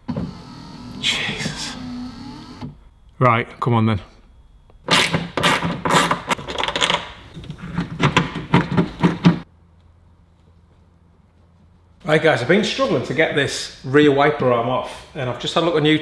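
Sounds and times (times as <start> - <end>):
faint hum: 0.2 - 5.4.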